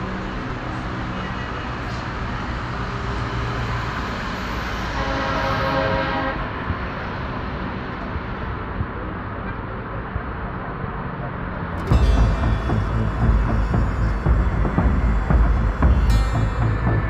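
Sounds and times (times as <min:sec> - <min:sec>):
road traffic passing: 0:00.0 - 0:17.0
vehicle horn: 0:04.8 - 0:06.6, 0:11.8 - 0:17.0.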